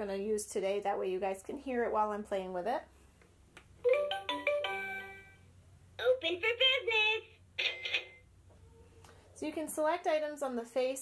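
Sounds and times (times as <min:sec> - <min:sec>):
toy high-pitched recorded voice: 0:06.0 - 0:08.2.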